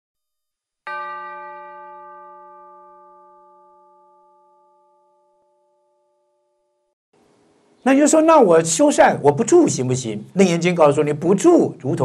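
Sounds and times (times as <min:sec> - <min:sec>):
bell ringing: 0:00.9 - 0:06.9.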